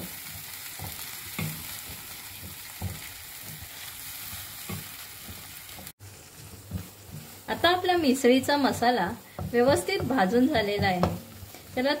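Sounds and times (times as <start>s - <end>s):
paste sizzling in oil: 0.0s - 12.0s
spatula scraping pan: 0.0s - 12.0s.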